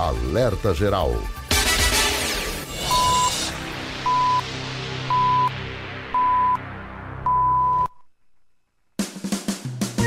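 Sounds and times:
short electronic beeps: 2.8s - 3.4s, 4.0s - 4.5s, 5.1s - 5.5s, 6.2s - 6.6s.

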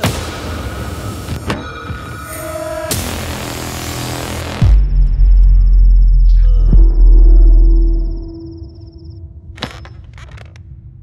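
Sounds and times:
deep low drone: 4.6s - 9.4s.

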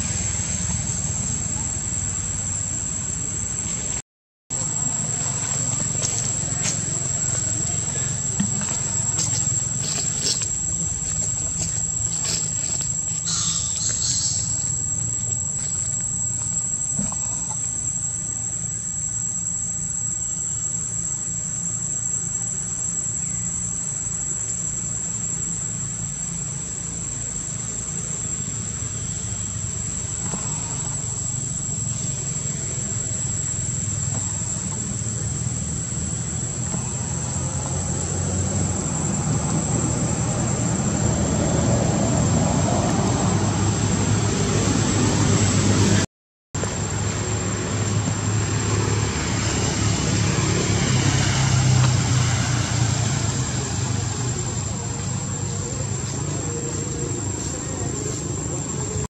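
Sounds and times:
high-pitched insect drone: 0.0s - 46.0s, 46.6s - 59.0s.

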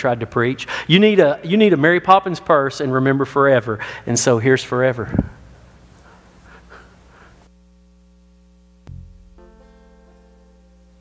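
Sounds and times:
electrical hum: 2.6s - 11.0s
low thump: 8.9s - 9.6s.

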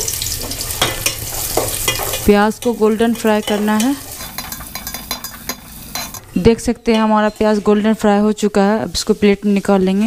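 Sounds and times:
onions sizzling in oil: 0.0s - 10.0s
metal spatula scraping a pot: 0.4s - 8.0s.

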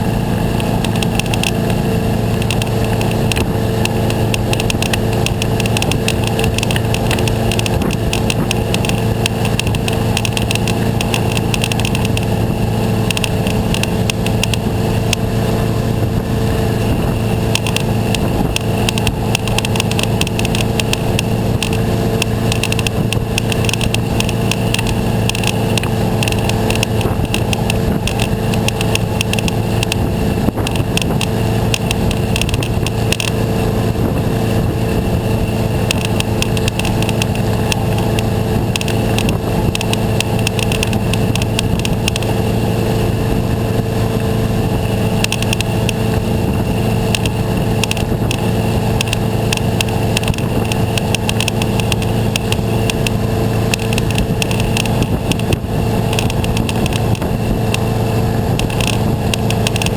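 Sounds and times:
boat engine running: 0.0s - 59.9s
water and wind noise: 0.0s - 59.9s.

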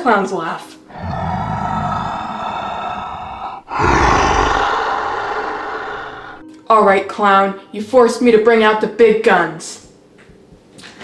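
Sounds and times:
monster roar: 0.9s - 6.4s.

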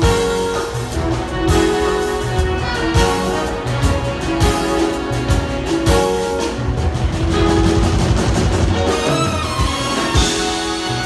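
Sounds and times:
big band jazz: 0.0s - 11.0s.

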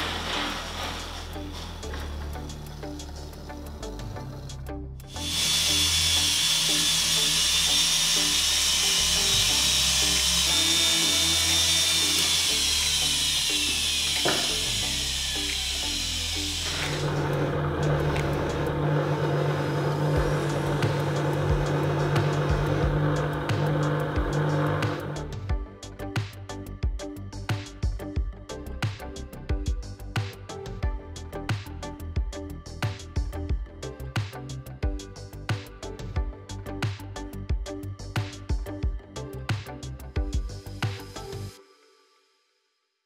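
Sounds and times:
rotary tool whining: 0.0s - 25.4s
polishing motor humming: 0.0s - 25.5s
background music: 0.0s - 42.8s.

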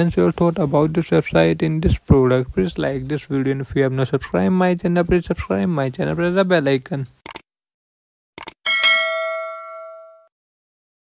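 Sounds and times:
notification bell ding: 8.7s - 10.3s.

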